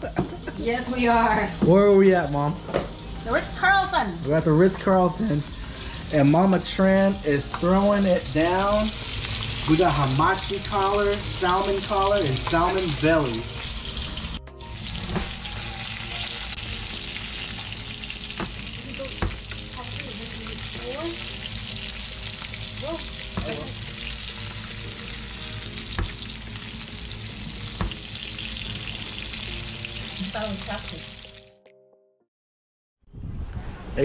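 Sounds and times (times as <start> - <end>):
fish sizzling in oil: 0.5 - 31.4.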